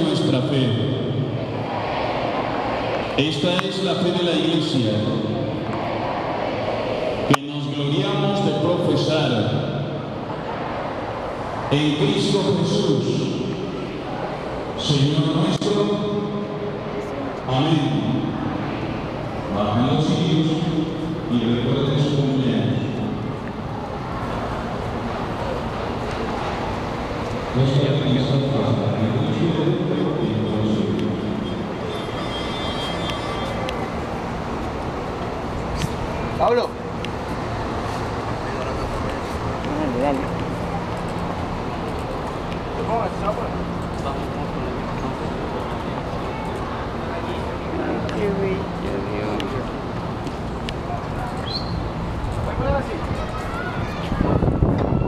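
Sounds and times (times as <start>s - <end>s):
outdoor rumble and hiss: 0.0s - 55.0s.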